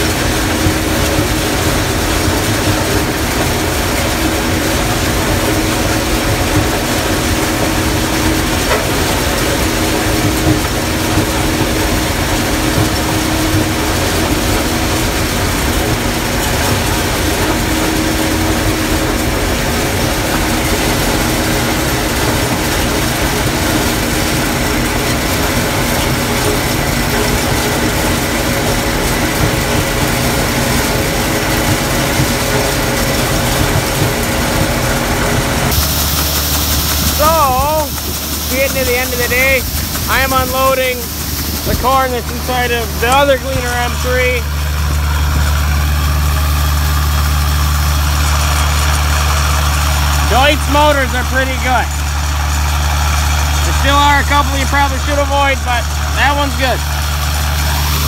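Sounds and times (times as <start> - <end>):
combine harvester engine droning: 0.0 - 58.0.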